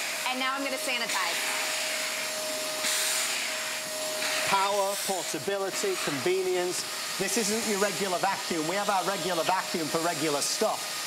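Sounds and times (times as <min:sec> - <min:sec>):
vacuum cleaner running: 0:00.0 - 0:11.0.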